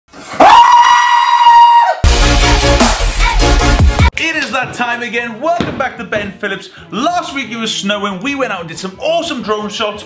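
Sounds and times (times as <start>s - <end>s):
man screaming: 0.4s - 2.1s.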